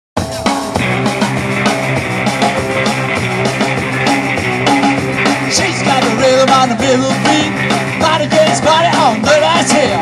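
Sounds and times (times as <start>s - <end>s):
drum kit beat: 0.2s - 10.0s
electric guitars: 0.2s - 10.0s.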